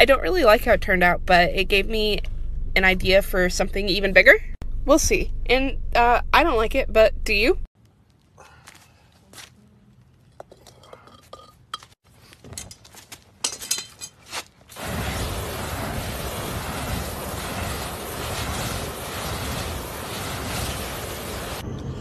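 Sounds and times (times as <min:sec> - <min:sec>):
metal tongs clinking: 0:10.5 - 0:11.9, 0:13.4 - 0:14.2
sawdust fire roaring: 0:14.7 - 0:22.0.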